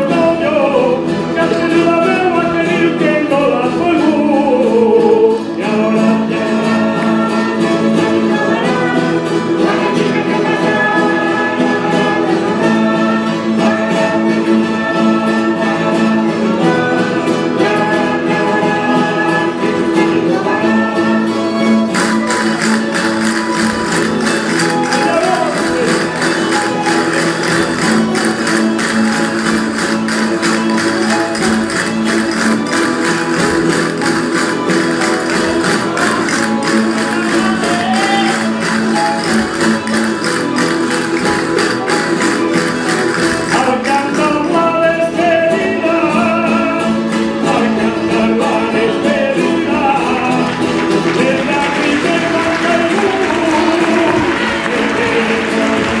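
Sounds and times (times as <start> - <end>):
fast strummed rhythm: 0.0 - 56.0
folk string band playing: 0.0 - 56.0.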